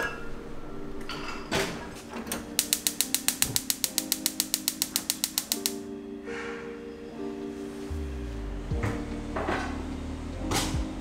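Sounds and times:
soft background music: 0.0s - 11.0s
gas igniter clicking rapidly: 2.6s - 5.8s.

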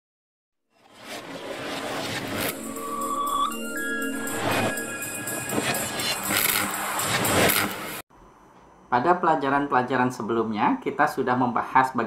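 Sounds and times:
intro music: 2.3s - 8.0s
rushing swells of noise: 2.6s - 8.0s.

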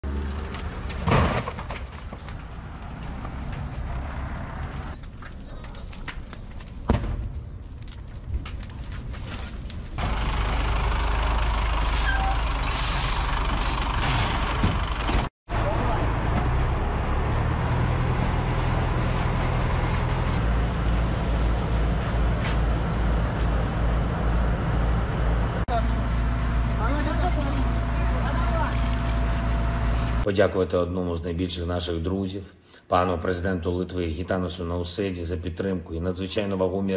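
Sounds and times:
fire truck engine running: 9.9s - 30.3s.

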